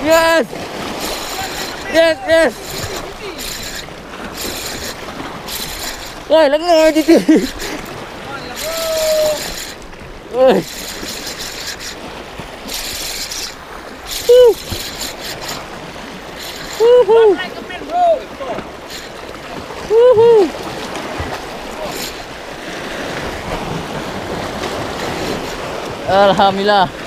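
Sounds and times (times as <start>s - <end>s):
man calling out: 0.0s - 0.6s, 1.3s - 3.5s, 6.3s - 7.5s, 8.2s - 9.5s, 10.3s - 10.7s, 14.2s - 14.6s, 16.8s - 18.7s, 19.9s - 20.6s
sea water washing on rocks: 0.0s - 27.0s
fishing reel whirring: 0.1s - 26.2s.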